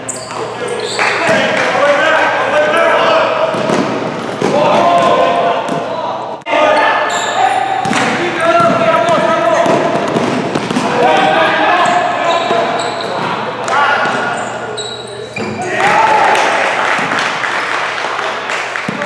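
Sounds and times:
sneakers squeaking: 0.0 - 1.6, 2.8 - 16.1
players calling out: 0.0 - 19.0
basketball bouncing on court: 7.8 - 13.4.

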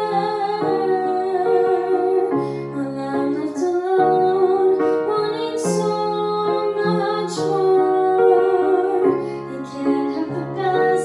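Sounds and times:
piano chords: 0.0 - 11.0
woman singing: 0.0 - 11.0.

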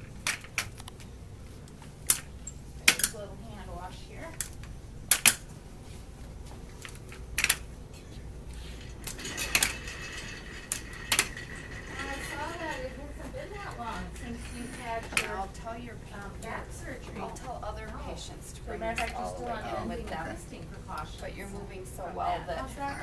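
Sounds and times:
metal walker clacking on floor: 8.8 - 16.6.

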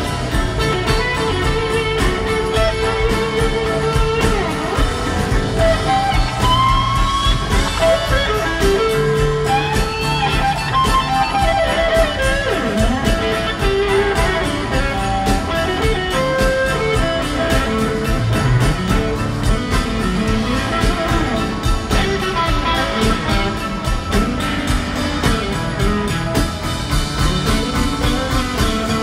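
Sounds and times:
blues-rock band playing live: 0.0 - 29.0
electric guitar lead solo: 0.0 - 29.0.

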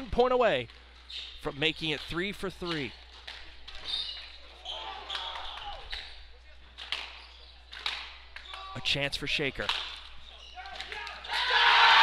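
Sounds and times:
shoes squeaking on wooden floor: 1.0 - 6.3, 7.0 - 7.7, 10.0 - 11.4.

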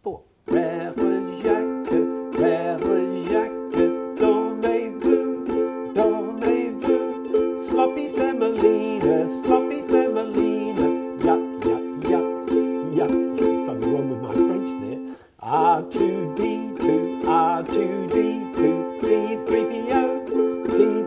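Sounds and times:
ukuleles strumming a chord: 0.5 - 21.0.

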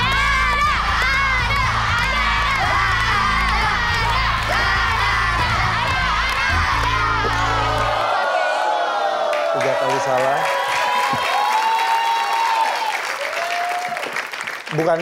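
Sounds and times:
game-show music with bass: 0.0 - 8.1
crowd shouting and cheering: 0.0 - 14.9.

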